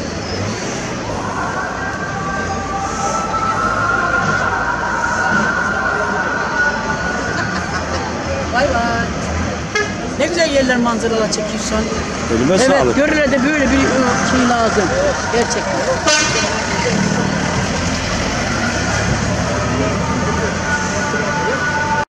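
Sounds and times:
traffic noise: 0.0 - 22.0
people talking: 1.3 - 9.2, 10.2 - 17.9.

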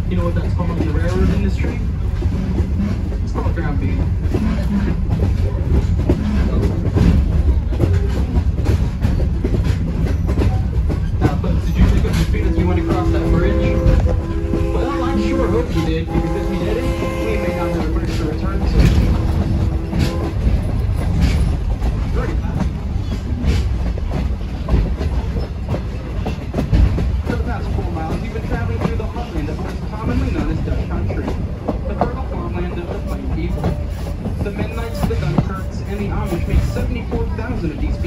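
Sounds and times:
rail joint clicks: 0.0 - 38.0
train wheels rumbling on rails: 0.0 - 38.0.

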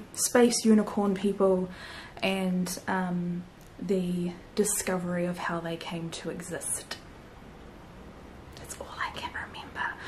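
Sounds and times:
woman whispering: 8.6 - 10.0.

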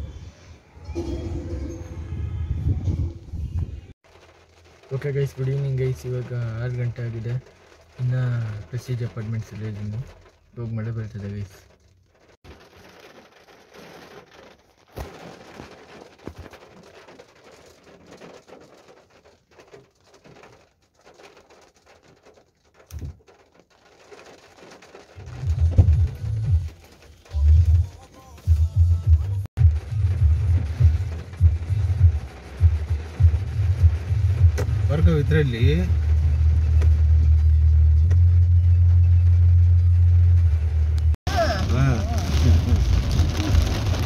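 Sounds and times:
rain ticking on a car roof: 4.0 - 44.0
person speaking: 41.3 - 42.8.

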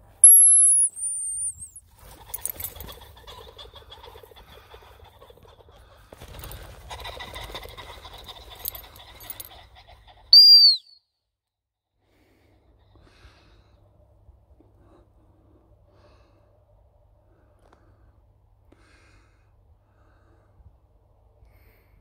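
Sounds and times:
high-pitched dog whistle blasts: 0.2 - 1.8, 10.3 - 11.0.

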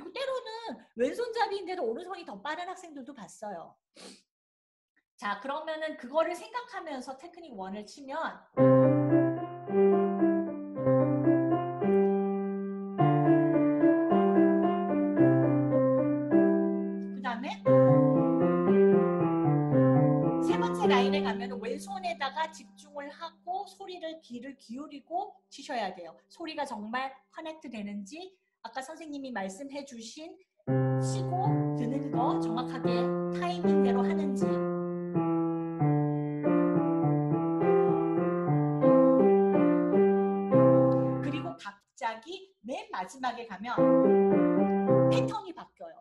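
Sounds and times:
grand piano exercise: 8.6 - 22.6, 30.7 - 41.5, 43.8 - 45.3
person speaking: 17.1 - 18.1, 20.4 - 23.2, 31.0 - 34.6, 40.7 - 41.7, 45.1 - 46.0.

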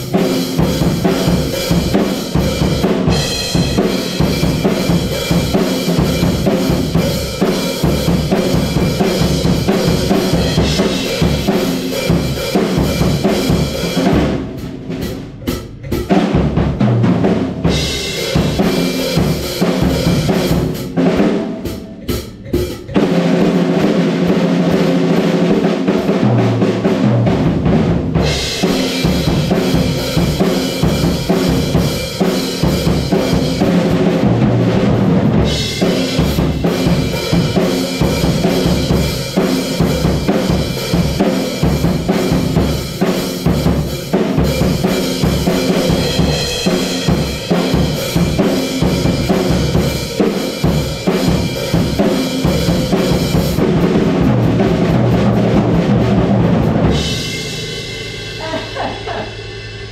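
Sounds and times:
washing cymbals: 0.0 - 16.6, 17.6 - 25.6, 28.2 - 59.9
rock drum kit: 0.0 - 59.9.

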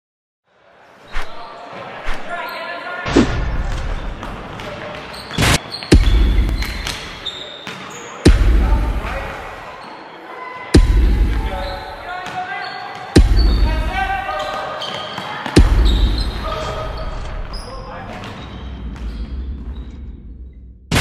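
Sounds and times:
deep boom: 3.1 - 4.0, 8.3 - 9.1, 10.8 - 11.4.

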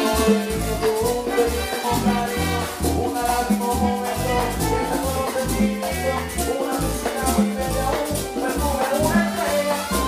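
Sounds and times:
congas drumming: 0.0 - 10.0
low bass line: 0.0 - 10.0
salsa orchestra playing: 0.0 - 10.0.

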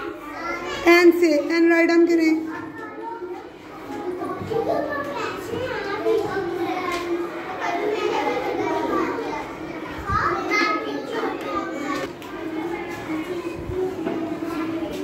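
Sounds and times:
young children chattering: 0.0 - 15.0.

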